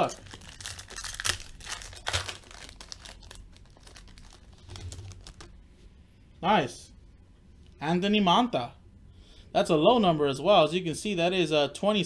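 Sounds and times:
foil wrapper rustling: 0.0s - 5.5s
foil wrapper tearing: 0.0s - 5.5s.

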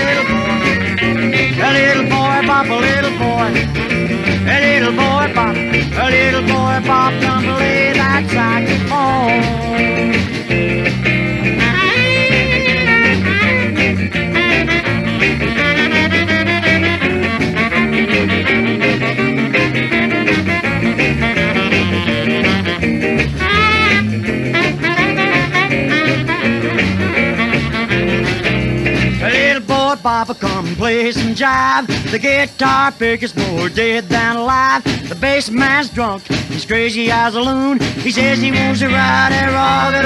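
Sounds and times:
person singing: 0.0s - 3.7s, 4.3s - 10.3s, 29.2s - 40.0s
rock and roll band playing: 0.0s - 40.0s.

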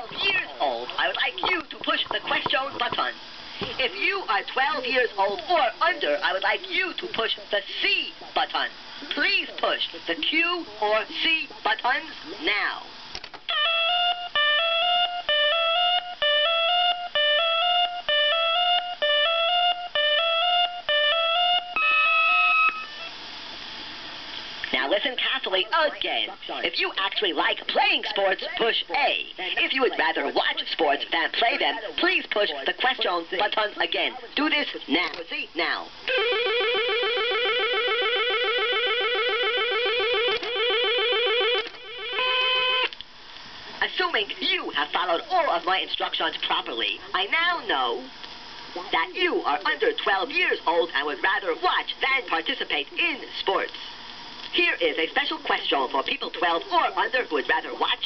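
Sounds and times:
tape hiss: 0.0s - 58.0s
electronic beeping tune: 13.5s - 23.1s
long electronic tone: 13.5s - 23.2s, 36.1s - 42.9s.

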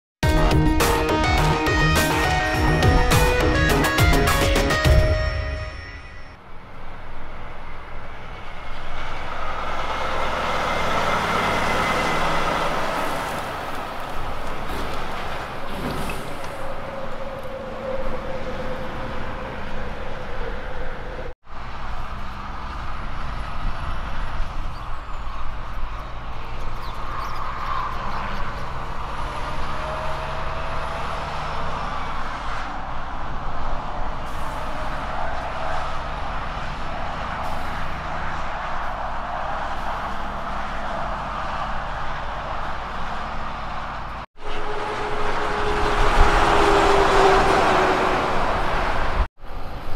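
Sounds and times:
truck diesel engine passing: 0.3s - 49.9s.

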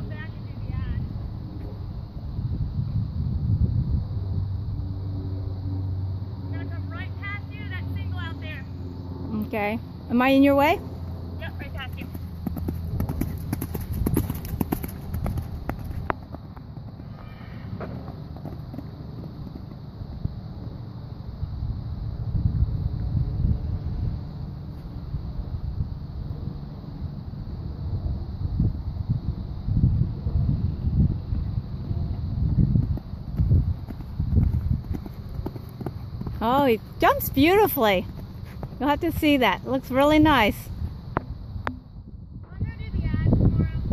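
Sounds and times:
hoofbeats on sand: 11.7s - 20.8s, 32.5s - 39.6s.

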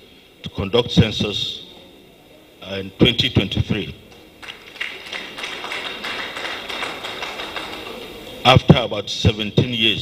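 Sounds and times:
audience applauding: 4.4s - 8.2s.

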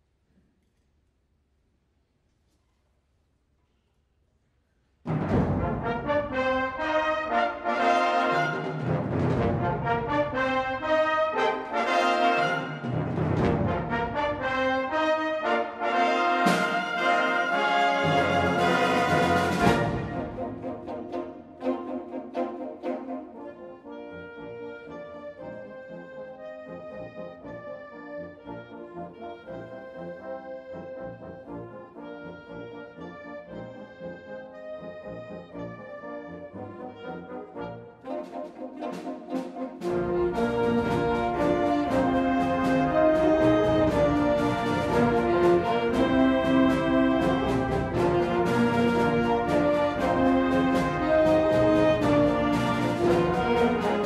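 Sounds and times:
wind band playing: 5.1s - 54.0s.

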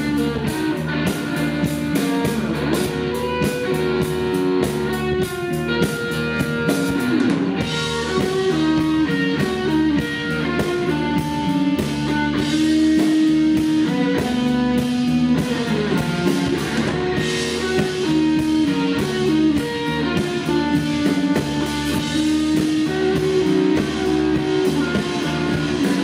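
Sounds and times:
bass guitar: 0.0s - 26.0s
drum kit: 0.0s - 26.0s
electric guitar ringing notes: 0.0s - 26.0s.

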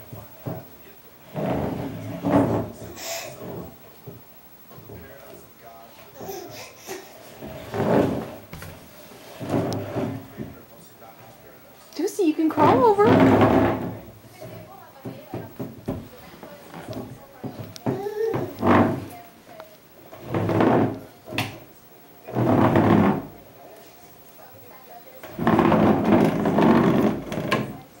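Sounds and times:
table legs scraping on wood floor: 0.0s - 11.6s, 12.2s - 19.4s, 20.0s - 23.9s, 25.2s - 27.9s.

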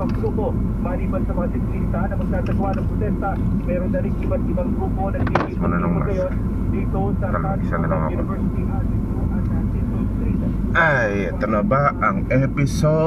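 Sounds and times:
car cabin hum: 0.0s - 13.0s
man talking: 0.0s - 13.0s.

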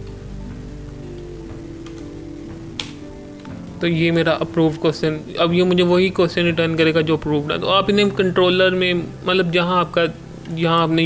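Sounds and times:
soft background music: 0.0s - 11.0s
sharp clicks: 1.1s - 3.6s.

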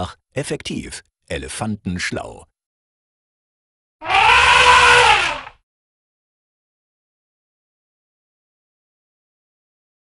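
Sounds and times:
elephant trumpeting: 4.0s - 5.6s.

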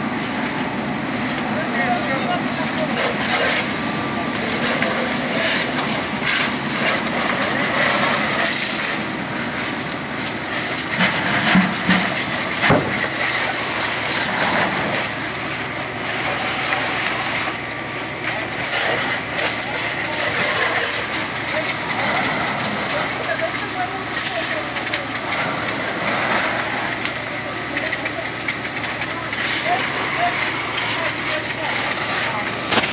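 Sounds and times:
faint voices: 0.3s - 10.0s, 10.6s - 32.9s
hose jet and steam hissing: 1.2s - 32.9s.

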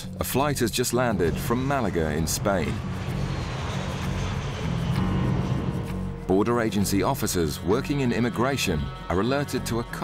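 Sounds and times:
background music: 0.0s - 10.0s
jet engines landing: 0.8s - 8.1s.

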